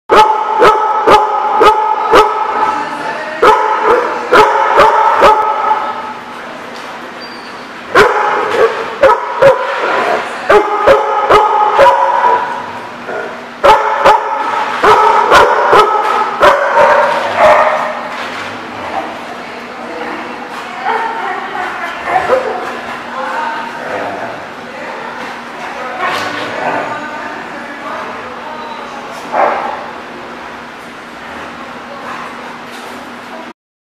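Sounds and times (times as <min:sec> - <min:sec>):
dog barking: 0:00.1 - 0:02.6, 0:03.4 - 0:06.0, 0:07.9 - 0:09.9, 0:10.5 - 0:18.0, 0:29.3 - 0:29.8.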